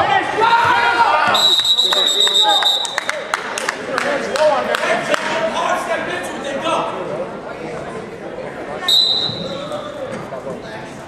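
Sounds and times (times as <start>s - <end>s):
referee's whistle: 1.3s - 3.1s, 8.9s - 9.6s.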